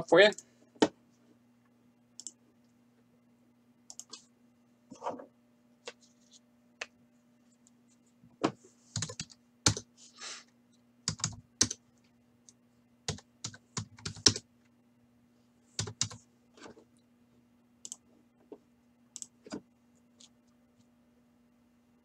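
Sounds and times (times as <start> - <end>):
faint low hum: 0.0 - 22.0
computer keyboard typing: 3.9 - 4.2, 9.0 - 9.9, 11.1 - 11.8, 13.1 - 14.4, 15.8 - 16.2.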